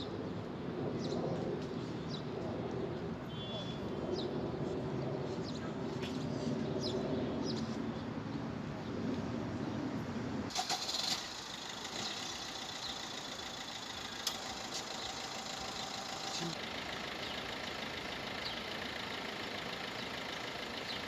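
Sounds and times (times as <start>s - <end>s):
motor hum: 11.5s - 21.0s.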